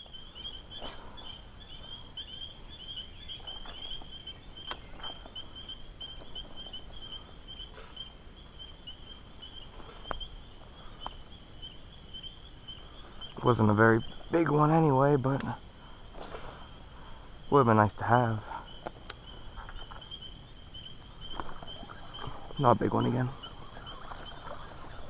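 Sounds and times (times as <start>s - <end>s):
insects trilling: 0.0s - 25.0s.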